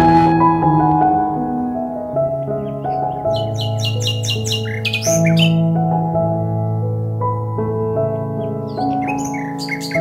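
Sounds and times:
calm instrumental music: 0.0 - 10.0
bird chirping: 2.4 - 5.7, 8.1 - 10.0.

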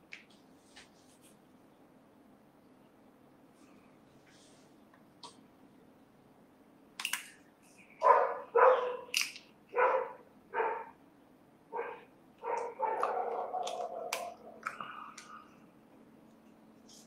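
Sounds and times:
dog barking: 8.0 - 9.1, 9.7 - 11.0, 11.7 - 14.6.

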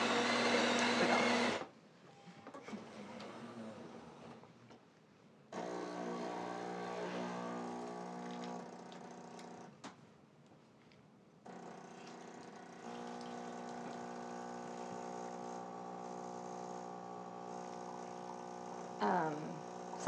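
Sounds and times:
coffee grinder running: 0.0 - 1.7, 5.6 - 9.7, 11.5 - 20.0
coffee machine pump humming: 0.0 - 1.7, 5.6 - 9.7, 11.5 - 20.0.

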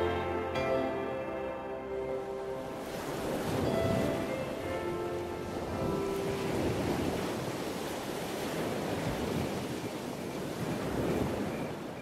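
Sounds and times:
ocean waves on shore: 0.0 - 12.0.

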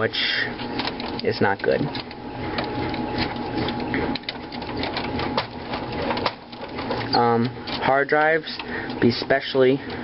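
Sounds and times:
cables and connectors rattling on metal: 0.0 - 10.0.

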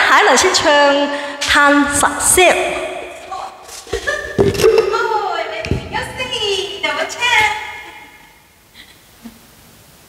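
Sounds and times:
woman talking: 0.0 - 3.6, 4.7 - 8.0
sharp knocks: 5.6 - 6.4.

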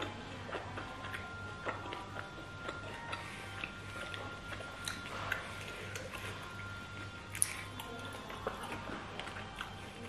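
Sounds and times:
low steady hum: 0.0 - 10.0
wet chewing mouth clicks: 0.0 - 10.0.

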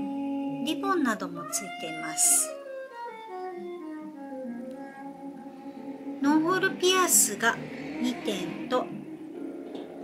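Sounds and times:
gentle instrumental music: 0.0 - 10.0.

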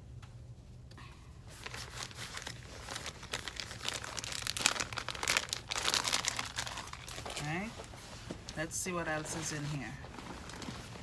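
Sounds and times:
plastic packaging crinkling: 1.5 - 8.6, 9.4 - 11.0.

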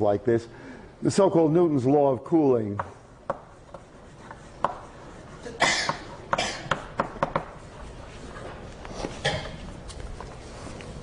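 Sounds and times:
chalk tapping on blackboard: 2.8 - 7.9
chalk scratching on blackboard: 3.2 - 9.2.

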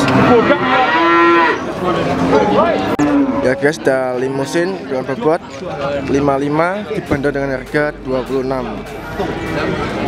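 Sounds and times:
cow mooing: 0.1 - 1.7, 2.3 - 3.7.

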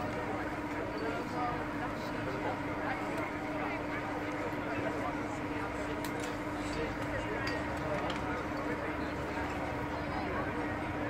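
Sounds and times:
background chatter: 0.0 - 11.0
indistinct talking: 0.0 - 11.0.

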